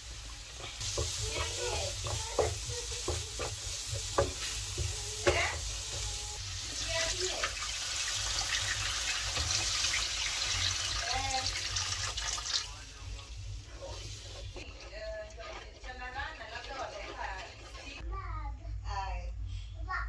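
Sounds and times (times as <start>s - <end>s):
curry sizzling: 0.0s - 18.1s
wooden spoon scraping a pan: 0.4s - 7.6s, 13.6s - 18.0s
water pouring into hot pan: 6.5s - 12.8s.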